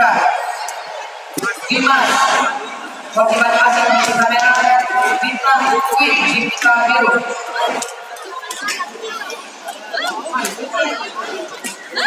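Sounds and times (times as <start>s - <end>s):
spectators and coaches calling: 0.0s - 12.0s.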